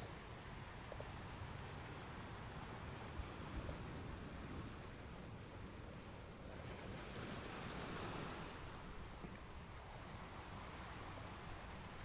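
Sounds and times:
faint surf on pebble beach: 0:00.0 - 0:12.0.

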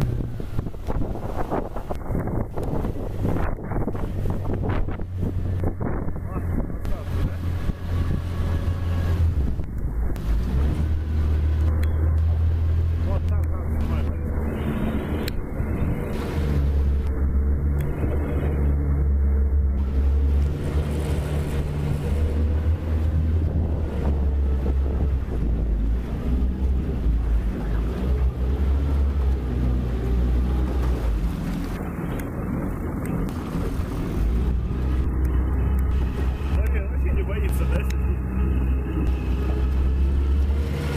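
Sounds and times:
boat motor running: 0:00.0 - 0:40.9
wind on microphone: 0:00.0 - 0:40.9.

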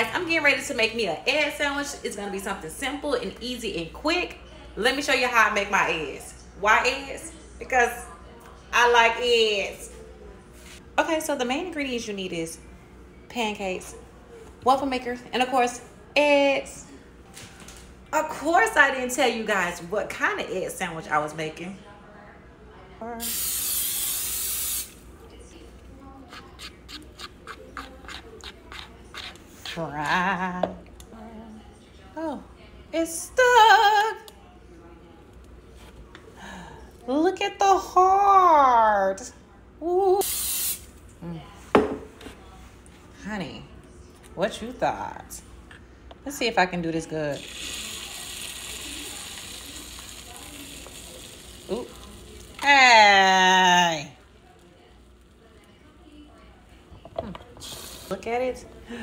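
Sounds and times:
aerosol spray hissing: 0:23.2 - 0:25.0
spoon scraping plastic bowl: 0:26.3 - 0:29.9
egg sizzling on hot plate: 0:47.4 - 0:52.6.

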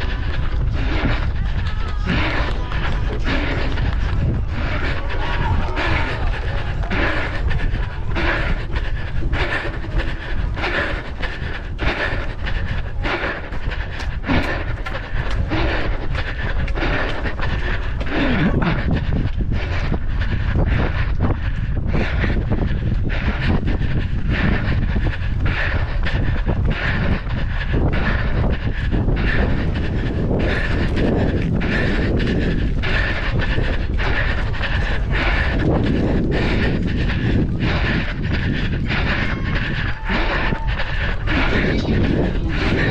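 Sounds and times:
footsteps on running track: 0:00.0 - 0:42.9
panting breath: 0:00.0 - 0:42.9
wind rumble on microphone: 0:00.0 - 0:42.9.

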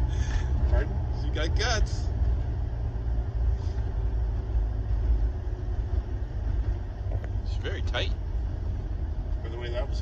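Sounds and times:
road rumble: 0:00.0 - 0:10.0.

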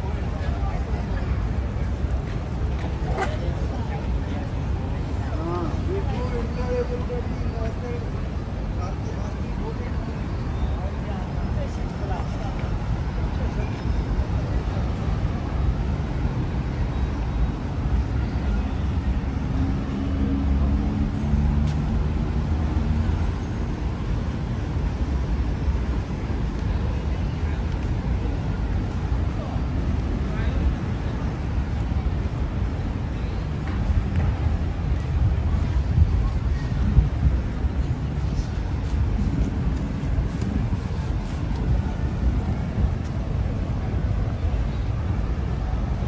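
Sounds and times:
passers-by talking: 0:00.0 - 0:46.0
road traffic rumble: 0:00.0 - 0:46.0.

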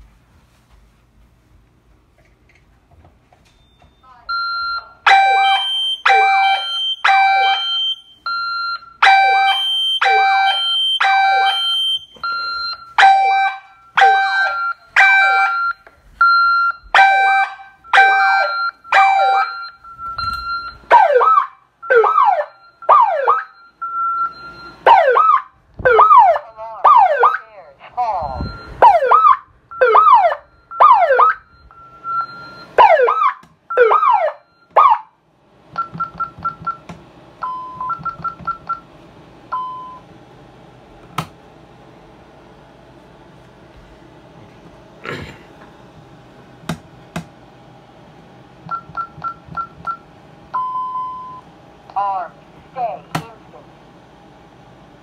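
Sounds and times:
alarm siren whooping: 0:04.1 - 0:27.6, 0:28.2 - 0:35.2.

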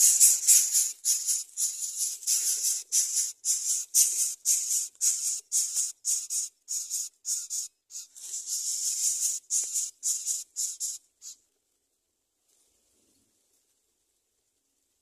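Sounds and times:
chicks giving raspy hisses: 0:00.0 - 0:11.4.

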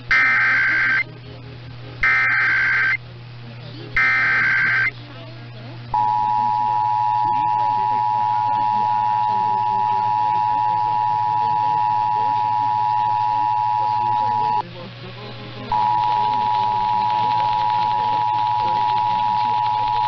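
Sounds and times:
data tone bursts: 0:00.0 - 0:01.0, 0:02.0 - 0:03.0, 0:04.0 - 0:04.9, 0:06.0 - 0:14.6, 0:15.7 - 0:20.0
steady low hum: 0:00.0 - 0:20.0
two-tone attention signal: 0:00.1 - 0:01.0, 0:02.0 - 0:03.0, 0:04.0 - 0:04.9, 0:06.0 - 0:14.6, 0:15.7 - 0:20.0.

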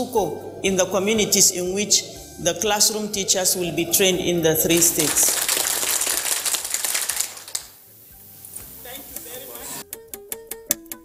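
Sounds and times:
people clapping: 0:04.7 - 0:07.8.

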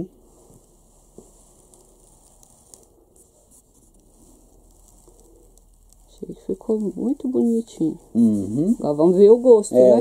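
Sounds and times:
faint hiss: 0:00.0 - 0:10.0
small clicks and rustles: 0:00.3 - 0:08.2.

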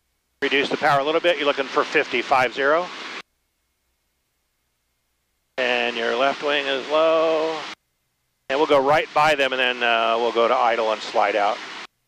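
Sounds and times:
man's voice: 0:00.4 - 0:02.9, 0:05.6 - 0:07.7, 0:08.5 - 0:11.6.

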